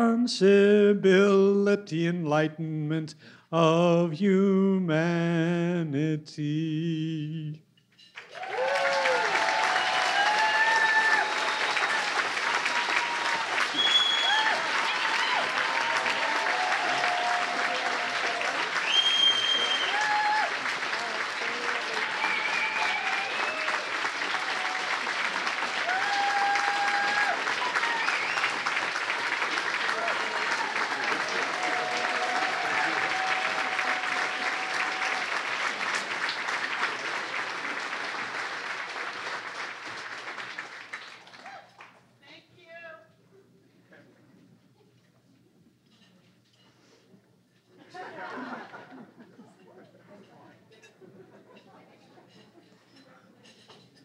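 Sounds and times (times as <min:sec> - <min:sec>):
audience applauding: 0:08.2 - 0:42.1.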